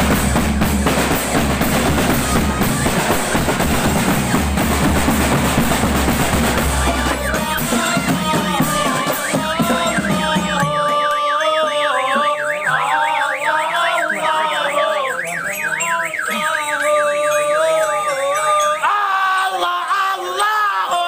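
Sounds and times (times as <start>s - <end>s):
marching band drums: 0.0s - 16.8s
warbling siren-like tone: 1.7s - 18.2s.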